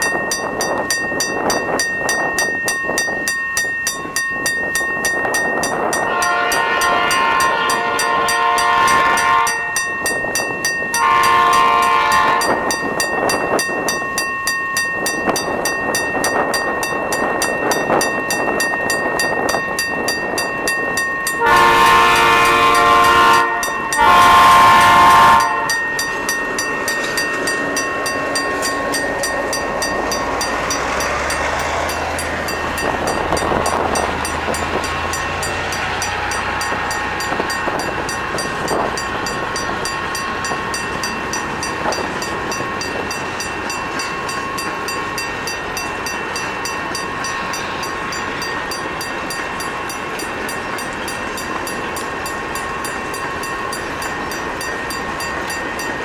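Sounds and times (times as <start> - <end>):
locomotive engine running: 0.0 - 56.0
locomotive air horn blasts: 6.0 - 9.8, 11.0 - 12.6, 21.4 - 25.8
freight wagons rolling past: 24.3 - 56.0.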